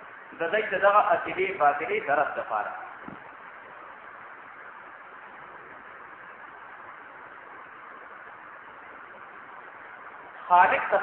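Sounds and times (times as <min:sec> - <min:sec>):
recording noise hiss: 0:00.0 - 0:11.0
man speaking: 0:00.4 - 0:02.9, 0:10.4 - 0:11.0.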